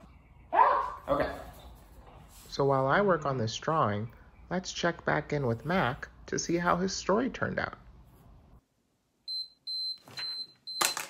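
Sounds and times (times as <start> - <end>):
timer alarm beeping: 9.3 - 10.9.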